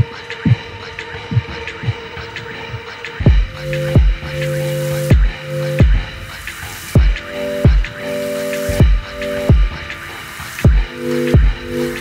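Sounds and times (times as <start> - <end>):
deep electronic kick drums: 3.2 - 8.1, 8.7 - 10.0, 10.6 - 12.0.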